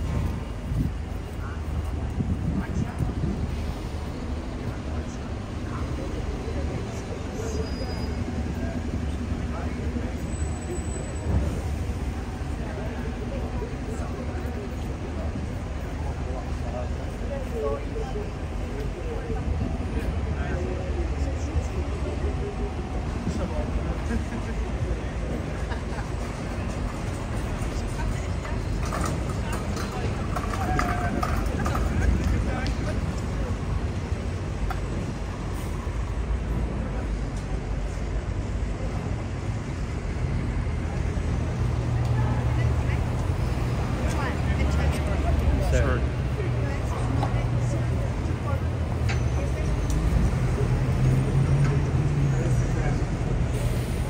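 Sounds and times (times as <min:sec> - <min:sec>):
buses and cars passing: 0:00.0 - 0:54.0
passers-by talking: 0:00.0 - 0:54.0
traffic rumble: 0:00.0 - 0:54.0.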